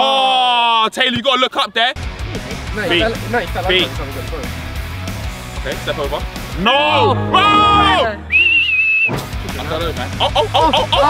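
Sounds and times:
music: 1.2s - 11.0s
people shouting: 6.6s - 8.3s
whistle blown: 6.9s - 9.3s.

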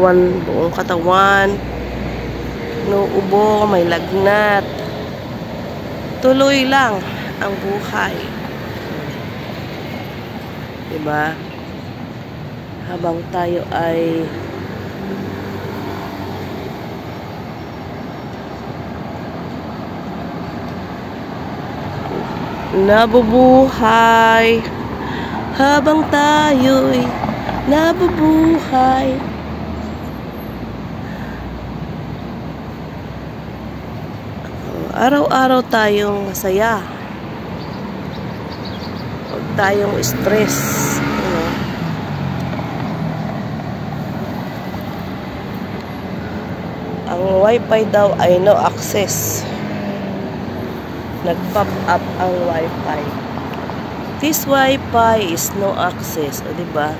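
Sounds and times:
passing vehicles rumbling: 0.0s - 56.9s.

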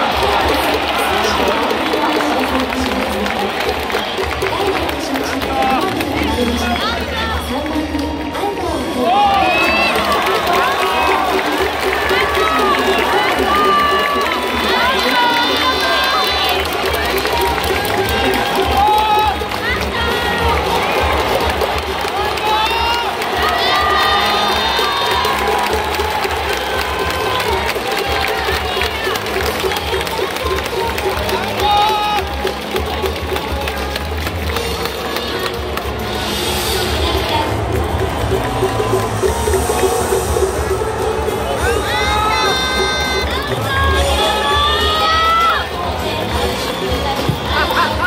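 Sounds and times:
hands clapping: 0.0s - 8.1s, 9.3s - 36.7s
crowd cheering and shouting: 0.0s - 48.0s
music over public address: 0.0s - 48.0s
rhythmic low pulse: 35.6s - 44.2s.

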